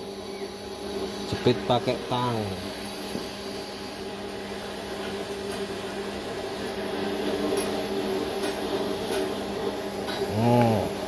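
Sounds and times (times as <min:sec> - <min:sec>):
steady electric hum: 0:00.0 - 0:11.0.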